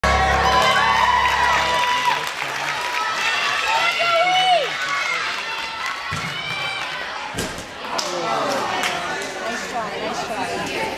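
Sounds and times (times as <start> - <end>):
chatter of many voices: 2.4 - 10.9.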